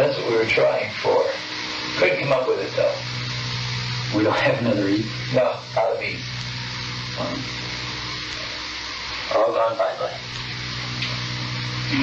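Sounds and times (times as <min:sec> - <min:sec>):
low hum: 0:00.0 - 0:12.0
tape hiss: 0:00.0 - 0:12.0.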